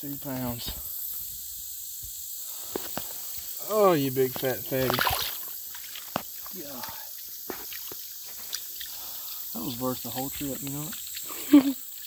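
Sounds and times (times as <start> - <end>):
high-pitched outdoor hiss: 0.0 - 12.0.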